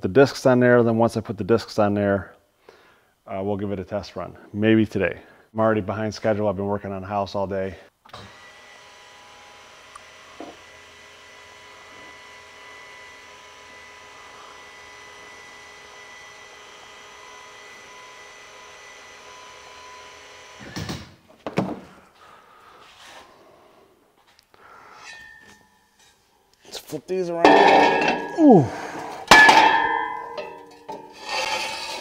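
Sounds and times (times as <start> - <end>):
clunks: 27.5 - 28.4.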